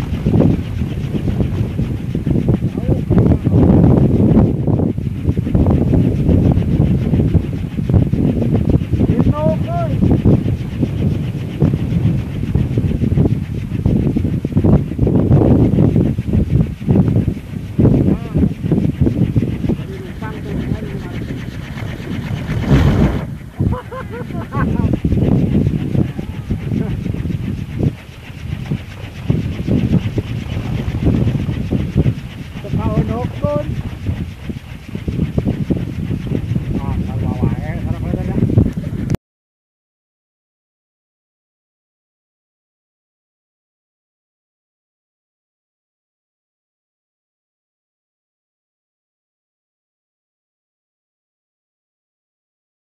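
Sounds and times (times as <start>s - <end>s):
wooden windmills whirring: 0.0s - 39.2s.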